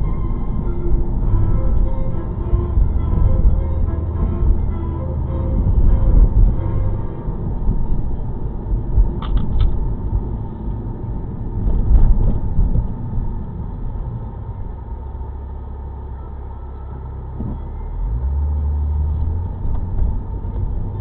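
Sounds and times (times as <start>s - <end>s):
car engine hum: 0.0s - 21.0s
road rumble: 0.0s - 21.0s.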